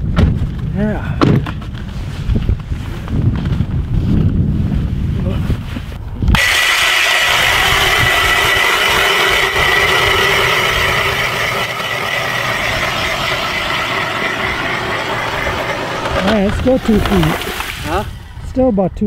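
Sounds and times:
wind rumble on microphone: 0.0 - 6.4, 7.3 - 19.0
ice auger motor whine: 6.4 - 17.9.

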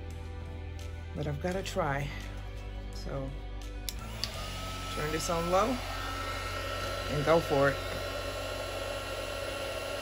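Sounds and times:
heat gun running: 3.9 - 10.0.

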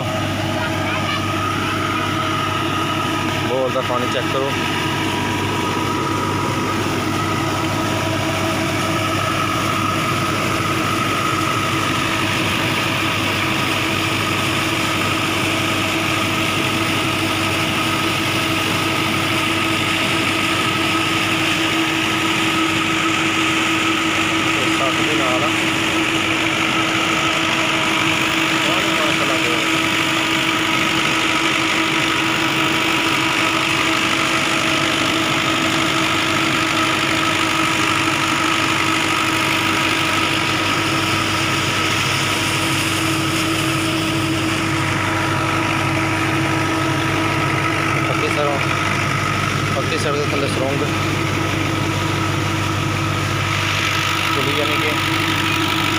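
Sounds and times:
pump machine hum: 0.0 - 55.9.

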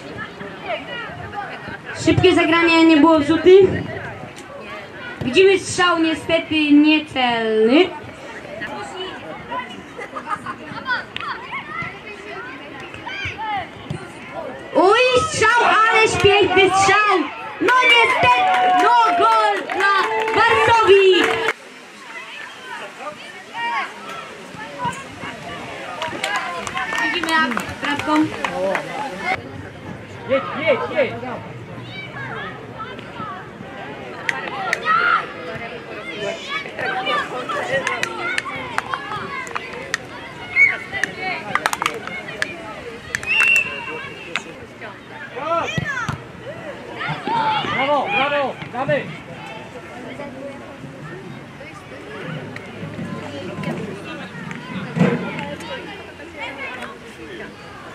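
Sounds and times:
children shouting: 14.8 - 27.6, 34.2 - 44.3, 45.2 - 48.6.

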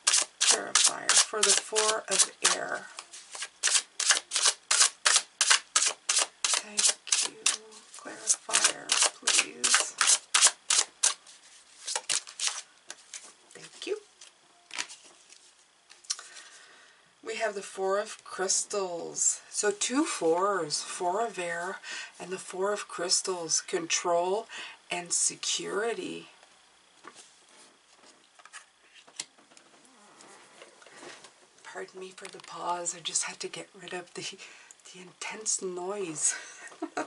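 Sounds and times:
cards being shuffled: 0.0 - 13.4, 14.2 - 16.0
cards rustling and tapping: 8.3 - 13.3.

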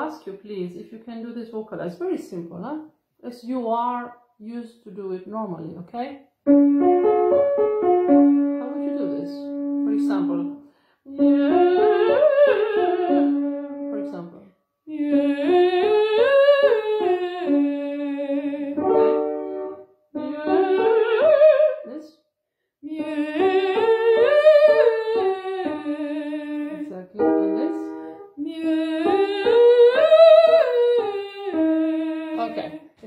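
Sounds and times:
woman singing: 8.1 - 22.2, 22.8 - 33.0.

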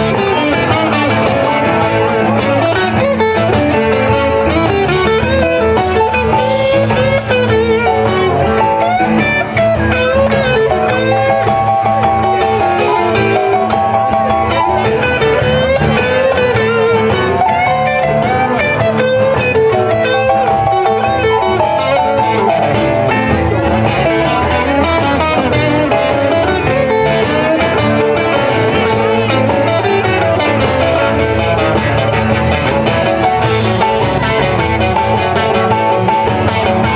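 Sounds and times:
lead guitar bending pitch: 0.0 - 36.9
live blues band playing: 0.0 - 36.9.

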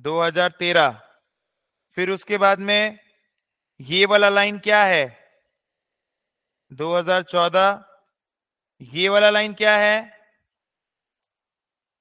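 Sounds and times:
man's voice: 0.0 - 1.0, 2.0 - 3.0, 3.8 - 5.2, 6.7 - 7.8, 8.8 - 10.2.

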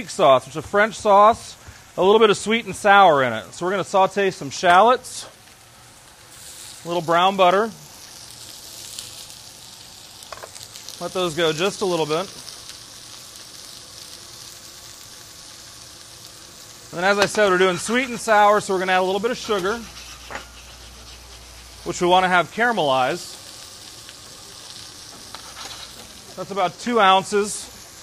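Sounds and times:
shallots sizzling in a pan: 0.0 - 28.0.

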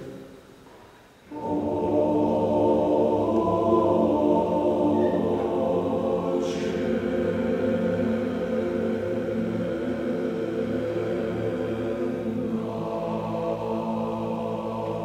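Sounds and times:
male choir singing: 1.3 - 15.0.

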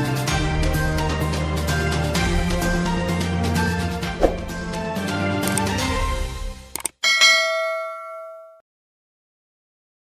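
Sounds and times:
outro music: 3.8 - 6.6
short clicks: 6.7 - 7.0
bright bell-like chime: 7.0 - 8.6.

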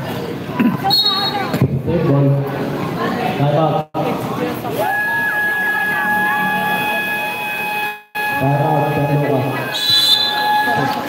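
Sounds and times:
crowd voices: 0.0 - 11.0
steady high-pitched tone: 6.1 - 10.7.

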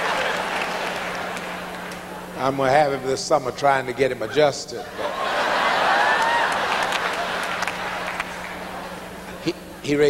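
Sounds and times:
audience applause: 0.0 - 2.0, 5.6 - 8.8.

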